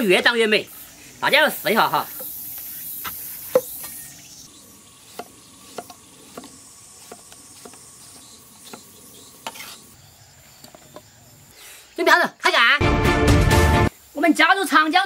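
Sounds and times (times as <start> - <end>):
cleaver chopping on wooden board: 5.1 - 9.8.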